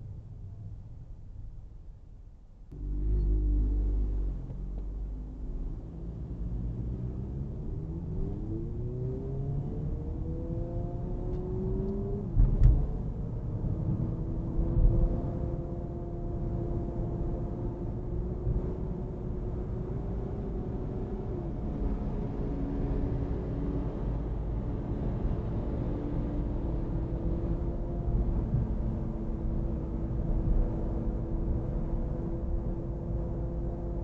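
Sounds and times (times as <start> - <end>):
car engine and tyres rumbling: 0.0 - 34.0.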